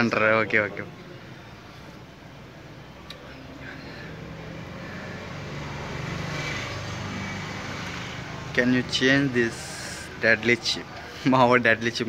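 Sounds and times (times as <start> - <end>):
distant engine passing by: 0.8 - 11.2.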